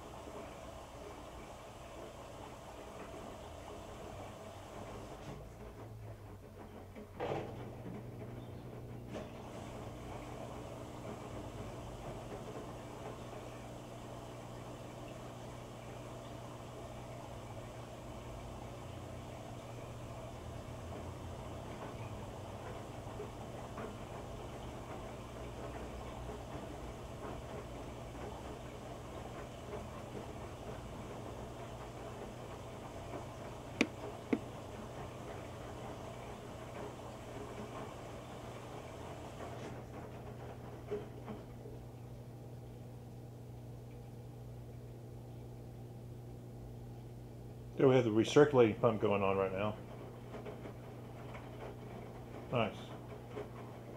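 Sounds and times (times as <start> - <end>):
low motor hum: 0.0 - 53.9
washing machine drum tumbling: 2.1 - 41.8.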